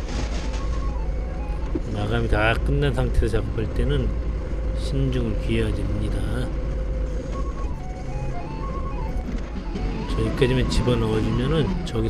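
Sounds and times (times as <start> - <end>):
forklift engine droning: 0.0 - 12.0.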